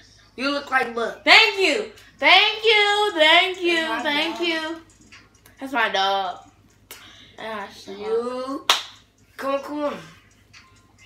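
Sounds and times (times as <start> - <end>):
hand snap: 6.9 - 7.1, 8.7 - 9.0.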